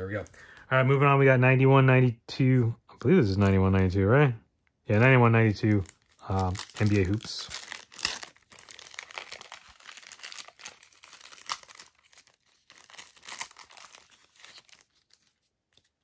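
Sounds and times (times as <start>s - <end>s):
wrapper tearing and crinkling: 5.6s - 16.0s.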